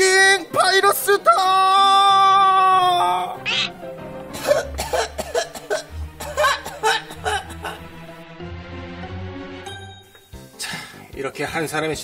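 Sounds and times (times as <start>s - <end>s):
comic background music: 0.0s - 12.0s.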